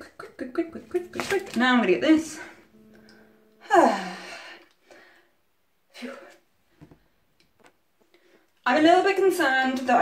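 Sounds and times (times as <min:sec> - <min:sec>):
woman sighing: 0:02.5 - 0:05.3.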